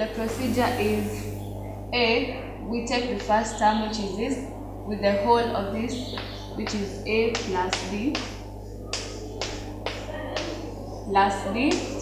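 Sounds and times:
low electrical hum: 0.0 - 12.0
chalk tapping on chalkboard: 6.1 - 10.6.

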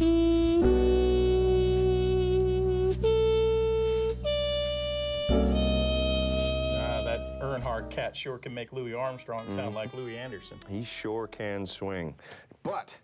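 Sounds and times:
reedy wind instrument long notes: 0.0 - 8.1, 8.9 - 11.8
steady bass: 0.0 - 8.1.

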